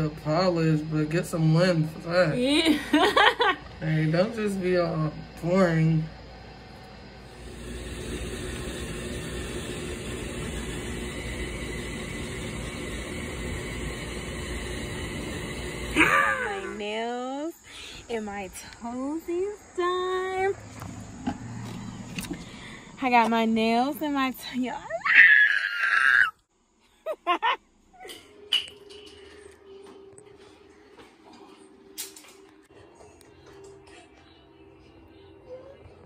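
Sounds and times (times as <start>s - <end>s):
woman squealing excitedly: 16.0s - 16.8s, 24.9s - 26.4s.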